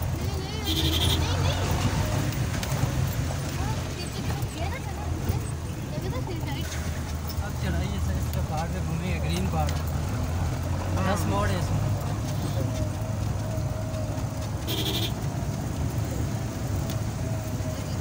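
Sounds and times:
car engine running under load: 0.0s - 18.0s.

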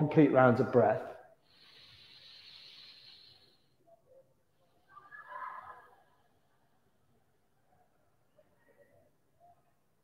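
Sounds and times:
man breathing through nose: 1.4s - 3.8s.

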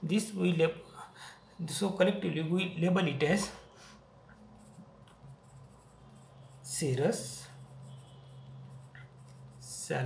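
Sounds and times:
pencil scratching on paper: 4.6s - 10.0s.

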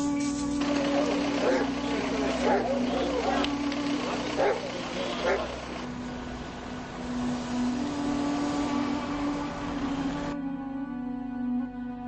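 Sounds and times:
vehicle rushing noise: 0.0s - 10.4s
low tone background music: 0.0s - 12.0s.

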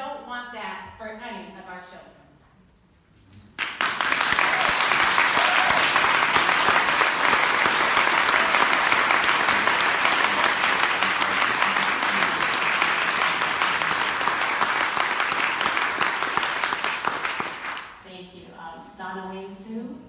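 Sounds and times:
crowd applauding: 3.6s - 18.0s.

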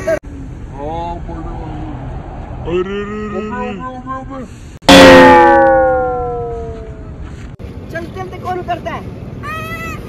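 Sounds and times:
hit with falling tone: 4.9s - 7.0s.

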